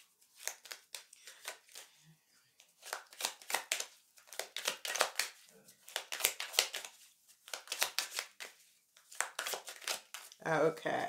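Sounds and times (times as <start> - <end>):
cards being shuffled: 0.0 - 1.9, 2.6 - 10.4.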